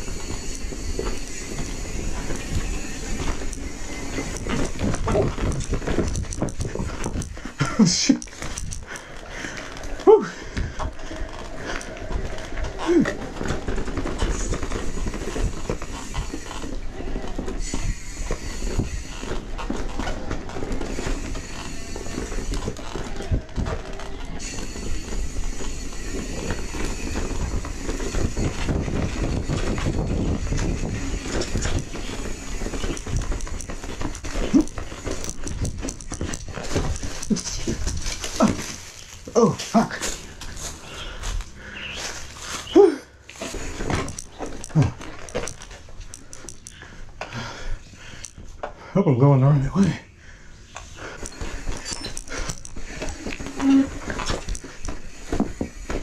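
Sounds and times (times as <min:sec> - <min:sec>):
bike clattering over rocks: 0:00.0 - 0:41.6, 0:43.4 - 0:48.6, 0:51.0 - 0:56.0
bike rolling on dirt: 0:00.0 - 0:56.0
short vocal calls: 0:41.7 - 0:43.2.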